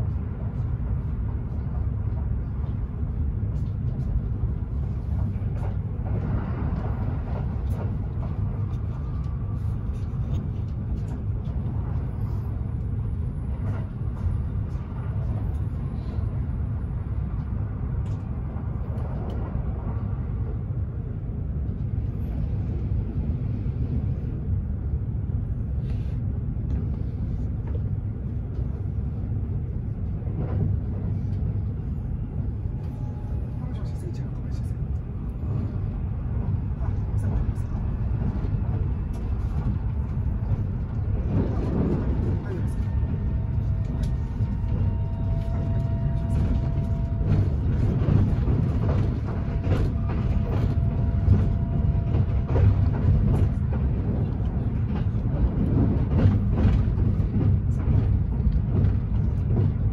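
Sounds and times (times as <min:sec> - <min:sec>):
train rumble from inside cabin: 0:00.0 - 0:59.9.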